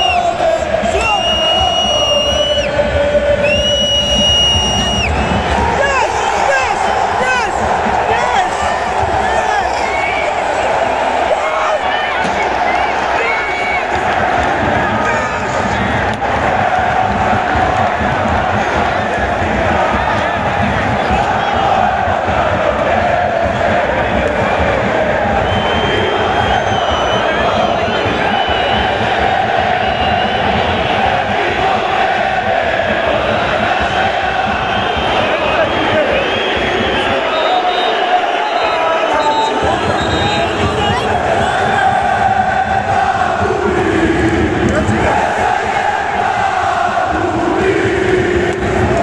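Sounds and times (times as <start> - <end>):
stadium crowd chanting: 0.0 - 49.0.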